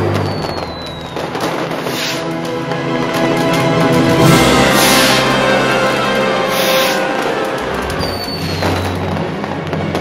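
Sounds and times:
fireworks going off: 0.0s - 10.0s
thin high whistle: 0.2s - 1.2s.

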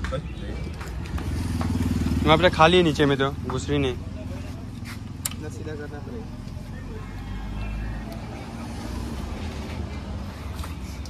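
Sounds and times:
motorcycle engine running: 0.2s - 6.6s.

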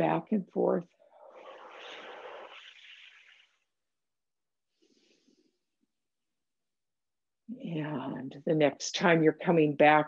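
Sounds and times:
person breathing slowly: 4.7s - 5.7s.

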